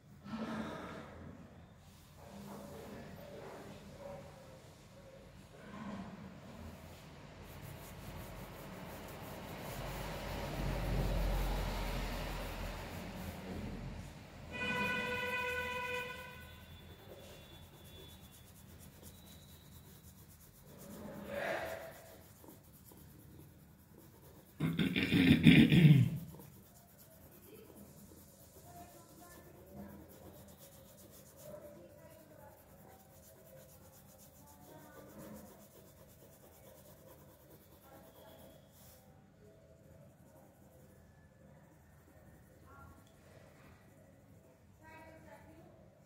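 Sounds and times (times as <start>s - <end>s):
pencil scratching on paper: 6.4s - 45.2s.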